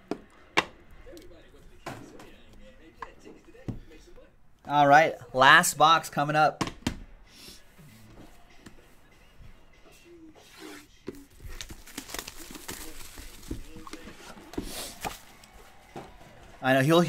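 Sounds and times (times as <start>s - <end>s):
plastic wrap rustling: 11.2s - 15.9s.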